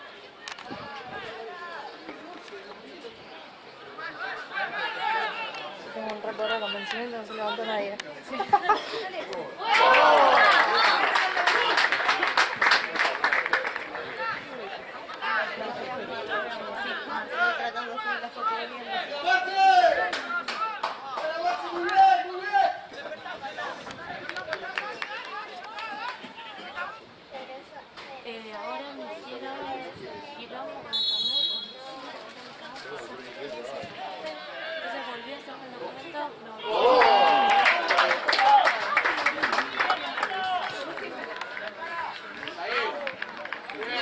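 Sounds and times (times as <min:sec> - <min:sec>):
people calling out and chattering: 0:00.0 - 0:44.0.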